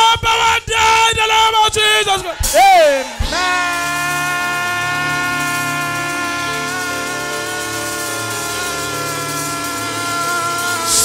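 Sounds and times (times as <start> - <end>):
keyboard sustained chord: 3.4 - 11.0.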